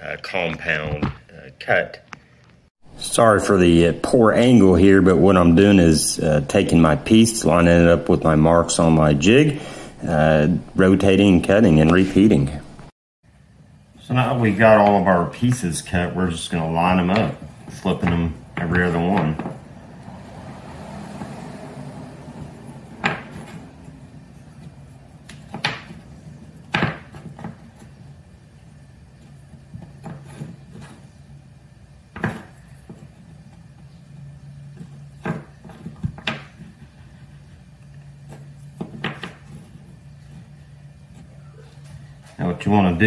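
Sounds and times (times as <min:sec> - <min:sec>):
steady low hum: 0:00.0 - 0:43.0
wooden blocks knocking on workbench: 0:23.0 - 0:23.4, 0:25.4 - 0:26.0, 0:26.7 - 0:27.6, 0:38.8 - 0:39.4.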